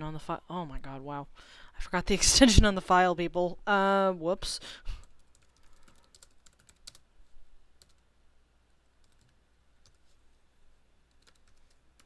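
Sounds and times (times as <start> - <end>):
faint typing on computer keyboard: 5.0 - 7.1, 7.8 - 8.1, 8.7 - 10.2, 11.0 - 12.0.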